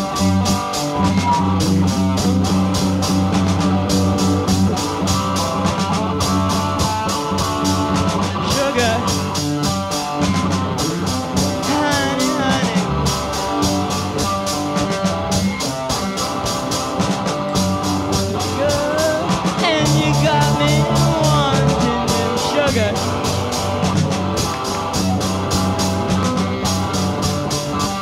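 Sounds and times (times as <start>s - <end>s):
punk rock band playing: 0.0s - 28.0s.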